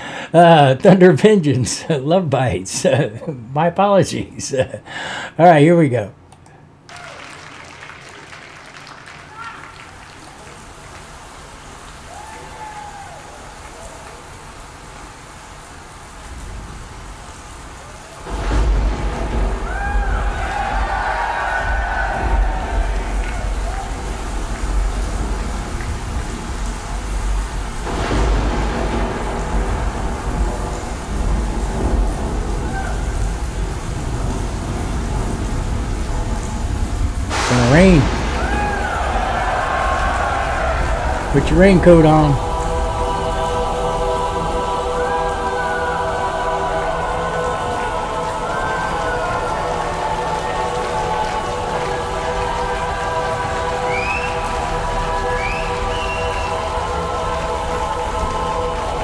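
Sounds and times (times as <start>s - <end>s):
rain hissing: 0.0s - 5.7s, 6.9s - 59.0s
deep thunder rumble: 18.2s - 41.4s
crowd shouting: 19.6s - 24.2s, 37.5s - 59.0s.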